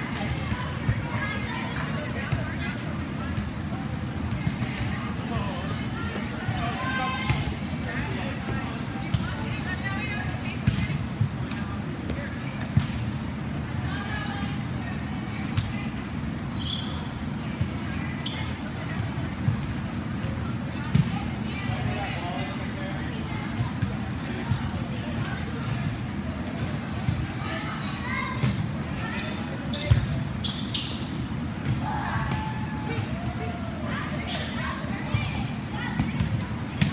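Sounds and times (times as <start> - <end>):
balls bouncing on gym floor: 0.0 - 13.1, 18.8 - 22.1, 28.3 - 30.2, 34.3 - 36.9.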